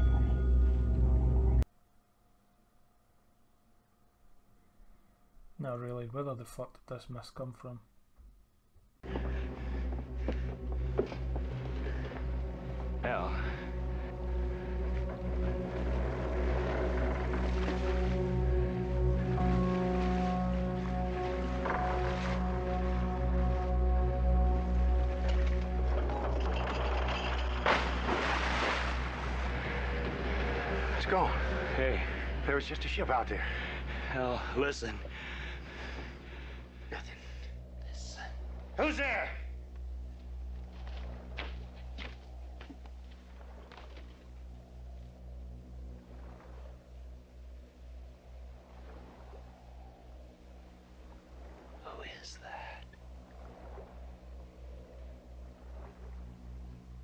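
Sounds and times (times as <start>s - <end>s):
low rumbling drone: 0.0s - 1.7s, 9.0s - 57.0s
low pulsing hum: 0.0s - 5.6s, 8.9s - 57.0s
person whispering: 51.8s - 53.0s.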